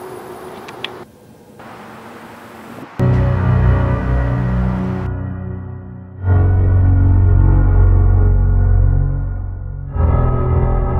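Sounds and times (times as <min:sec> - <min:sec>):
low rumble: 0:03.0 - 0:10.9.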